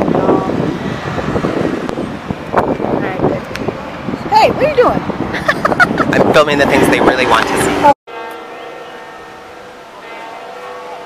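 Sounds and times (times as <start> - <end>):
wind buffeting microphone: 0.0 - 8.0
street noise: 0.0 - 11.0.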